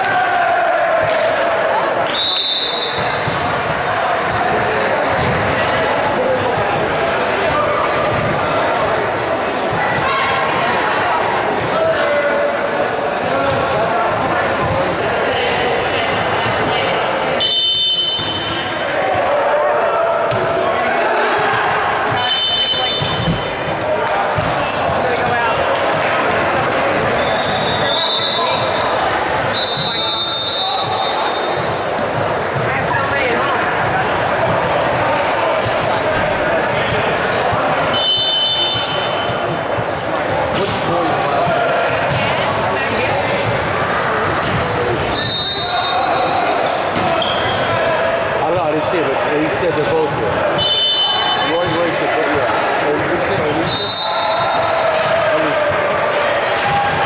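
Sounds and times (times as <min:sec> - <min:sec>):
chatter and calls of people: 0:00.0 - 0:57.0
volleyballs being hit: 0:21.4 - 0:27.8, 0:31.6 - 0:43.7.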